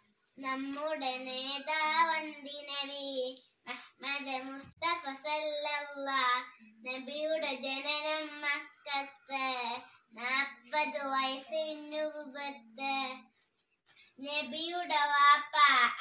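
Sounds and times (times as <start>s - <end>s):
girl singing unaccompanied: 0.4s - 13.3s, 14.2s - 16.0s.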